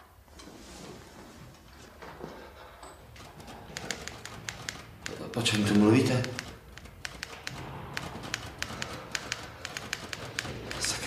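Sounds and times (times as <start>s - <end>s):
typewriter keys clacking: 3.1s - 11.0s.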